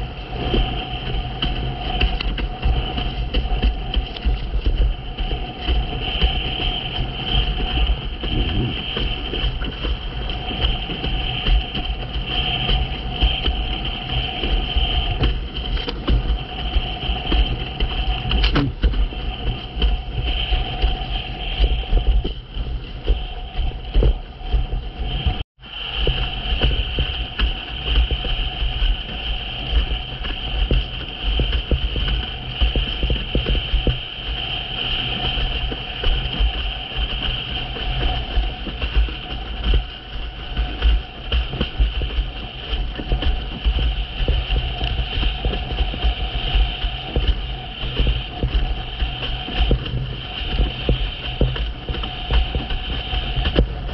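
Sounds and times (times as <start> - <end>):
water rushing and slapping: 0.0 - 53.9
wind buffeting microphone: 0.0 - 53.9.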